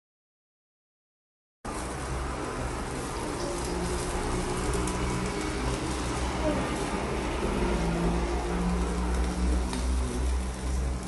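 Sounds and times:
meat sizzling on a grill: 0:01.7 - 0:11.0.

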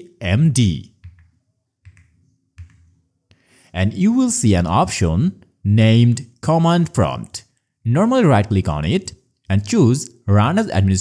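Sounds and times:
faint keyboard keystrokes: 0:01.0 - 0:02.9.

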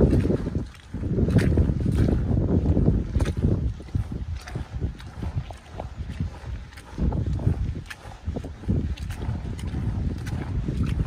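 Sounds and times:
boots stepping through mud: 0:00.0 - 0:11.0
wind rumbling on microphone: 0:00.0 - 0:11.0.

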